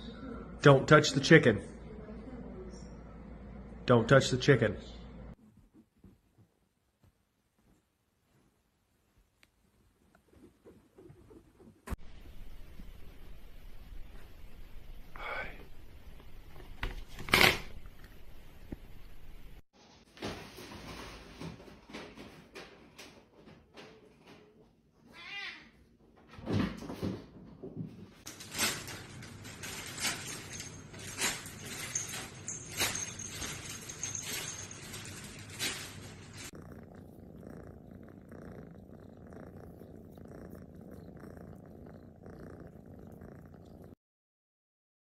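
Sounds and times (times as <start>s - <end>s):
cat purring: 9.6s - 14.2s, 28.5s - 44.0s
cat meowing: 25.1s - 25.7s.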